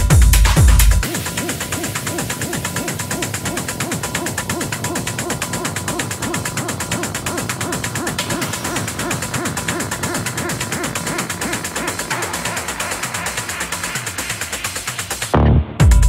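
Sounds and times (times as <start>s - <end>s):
fast ticking hi-hats: 0.0s - 16.0s.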